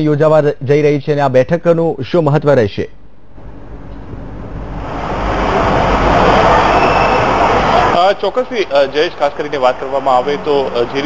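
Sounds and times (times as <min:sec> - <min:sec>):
low rumble: 0:03.3 - 0:08.0
steady rushing noise: 0:03.4 - 0:11.0.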